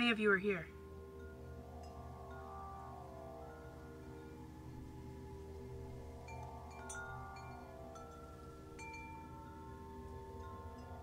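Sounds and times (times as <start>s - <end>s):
long held tones: 0.6s - 11.0s
chime-like bell notes: 0.8s - 11.0s.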